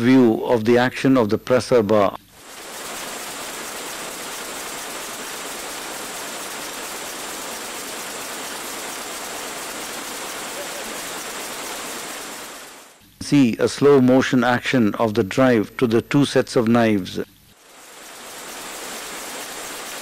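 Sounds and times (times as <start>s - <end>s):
steady hiss: 2.3s - 20.0s.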